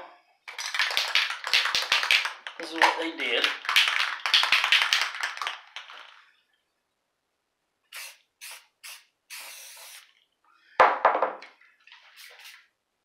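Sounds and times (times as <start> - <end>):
spray can ball rattling: 0.5 - 6.2, 7.9 - 10.1, 12.0 - 12.7.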